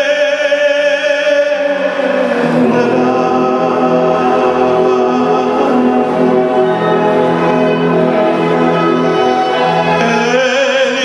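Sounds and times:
man singing into a microphone: 0:00.0 - 0:07.5, 0:09.8 - 0:11.0
sustained accompanying chords: 0:01.4 - 0:11.0.

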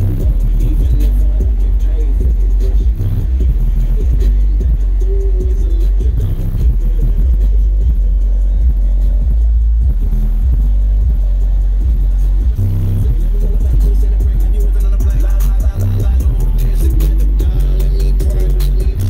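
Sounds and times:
bass-heavy music through car speakers: 0:00.0 - 0:19.0.

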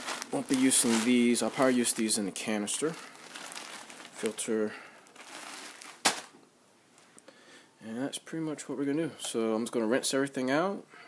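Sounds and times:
plastic bag crinkling: 0:00.0 - 0:06.4.

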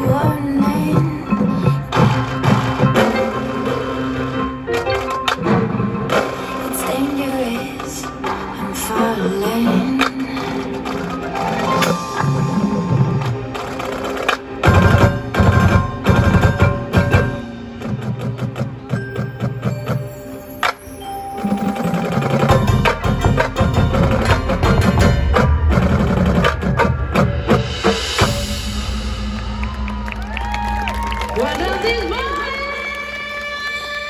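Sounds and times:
marching band playing: 0:01.4 - 0:09.6, 0:10.3 - 0:33.6
marimba notes: 0:10.3 - 0:28.8
drum hits: 0:22.1 - 0:31.3.

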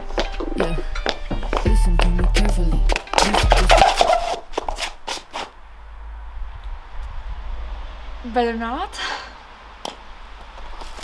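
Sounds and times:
high heels clicking on brick: 0:00.0 - 0:05.5
steady low rumble: 0:01.6 - 0:03.8, 0:05.6 - 0:10.5.

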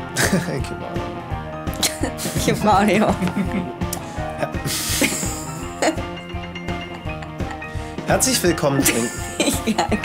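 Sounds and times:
background music: 0:00.0 - 0:10.0
woman laughing: 0:01.8 - 0:02.4, 0:03.0 - 0:03.8, 0:04.6 - 0:06.2, 0:06.8 - 0:07.7, 0:08.8 - 0:10.0.

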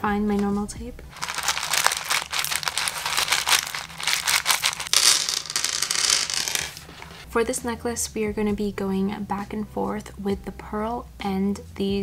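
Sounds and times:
beads rattling onto table: 0:01.1 - 0:07.2
plastic bag crinkling: 0:01.1 - 0:07.2.

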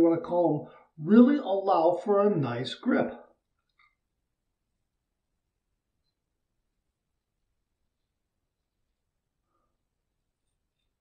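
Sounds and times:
man talking: 0:00.0 - 0:03.3.

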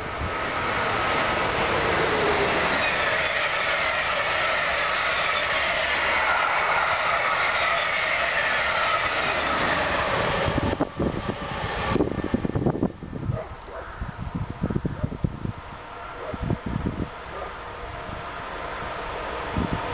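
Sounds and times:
passenger train passing: 0:00.0 - 0:19.9
wheels whining on rails: 0:00.0 - 0:19.9.

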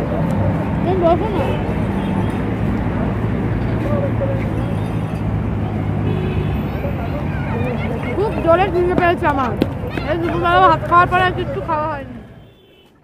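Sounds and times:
faint voices: 0:00.0 - 0:12.5
road traffic hum: 0:00.0 - 0:13.0.

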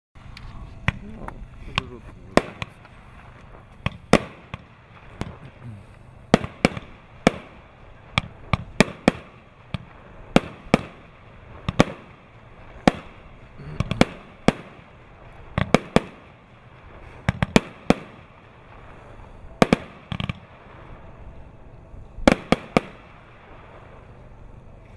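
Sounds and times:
firework bangs: 0:00.8 - 0:24.8.

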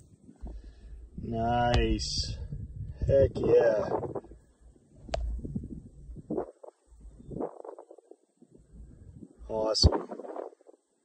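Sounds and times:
wind buffeting microphone: 0:00.0 - 0:10.6
faint rustling: 0:00.0 - 0:11.0.

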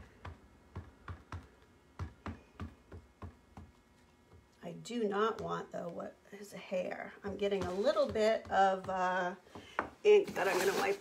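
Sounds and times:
ink pad tapping rubber stamp: 0:00.1 - 0:03.8.

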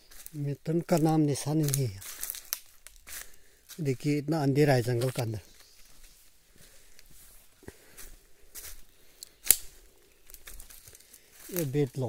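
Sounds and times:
footsteps in dry leaf litter: 0:00.0 - 0:12.0
sharp snap: 0:09.4 - 0:09.7.

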